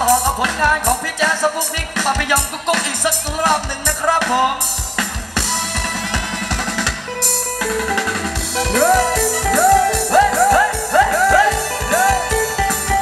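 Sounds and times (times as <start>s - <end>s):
live dance band music: 0.0s - 13.0s
bending lead line notes: 5.3s - 13.0s
man speaking: 8.6s - 12.5s.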